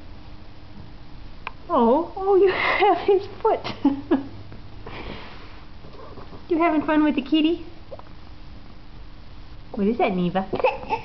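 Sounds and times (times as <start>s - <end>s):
woman laughing: 2.5s - 4.4s
breathy nasal exhale: 4.8s - 5.7s.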